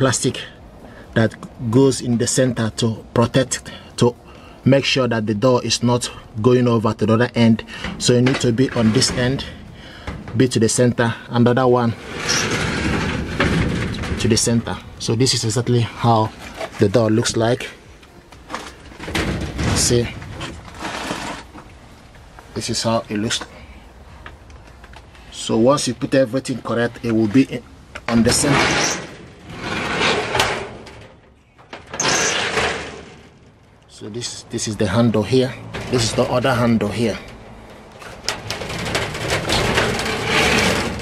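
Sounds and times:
sliding door scraping rumble: 7.6s - 10.8s, 11.4s - 17.4s, 18.5s - 21.7s, 26.6s - 33.6s, 34.2s - 41.0s.

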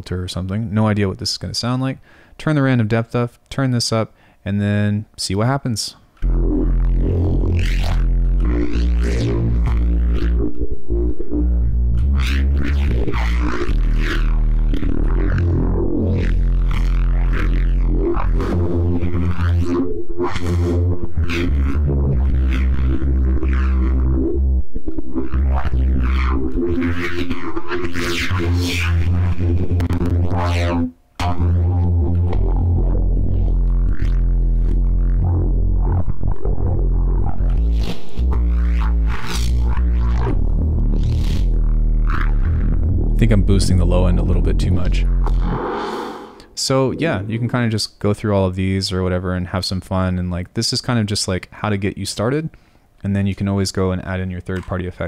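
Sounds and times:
heavy sweeping synth bass: 6.2s - 47.7s.

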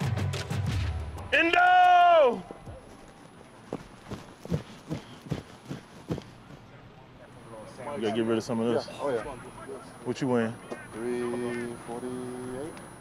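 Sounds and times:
man shouting: 1.3s - 2.5s
man speaking: 7.0s - 12.8s.

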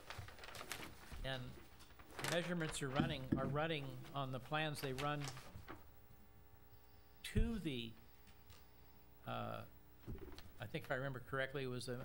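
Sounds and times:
paper pages rustling: 0.0s - 5.9s.

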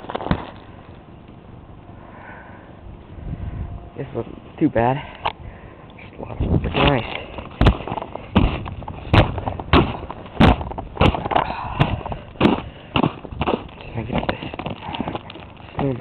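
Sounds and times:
footsteps crunching through snow: 6.7s - 16.0s.

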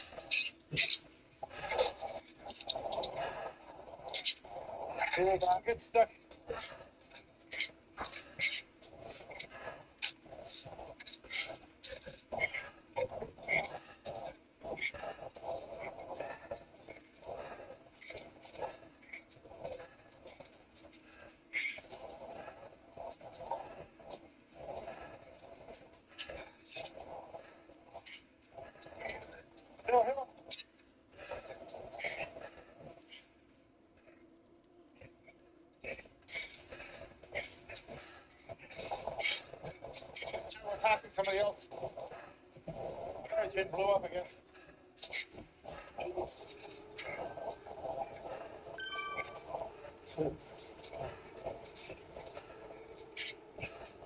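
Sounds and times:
hard breathing: 0.0s - 5.4s, 6.0s - 54.0s
faint steady hum: 0.0s - 54.0s.

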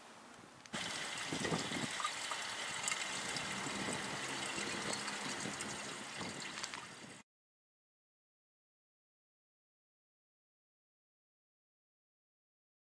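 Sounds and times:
water running and trickling: 0.8s - 7.2s.

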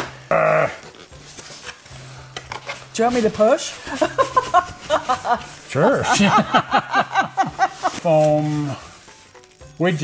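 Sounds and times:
cardboard box rustling: 7.4s - 9.5s.

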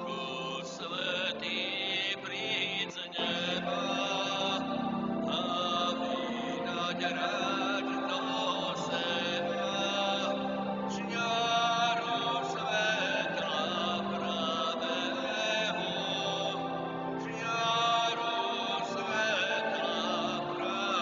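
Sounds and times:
voices singing a hymn: 0.0s - 21.0s.

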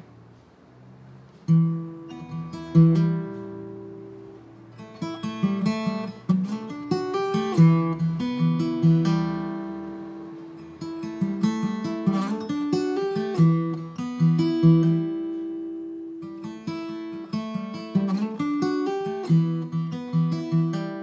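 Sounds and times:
acoustic guitar music: 0.0s - 21.0s.

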